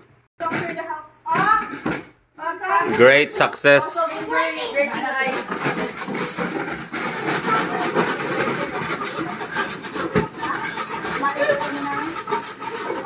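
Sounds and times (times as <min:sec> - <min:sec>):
metal bowls and utensils scraping: 0:02.9 - 0:13.0.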